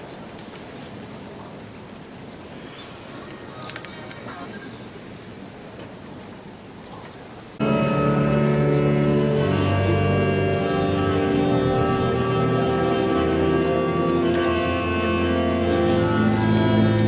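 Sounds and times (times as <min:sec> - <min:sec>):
pipe organ chords: 0:07.6 - 0:17.0.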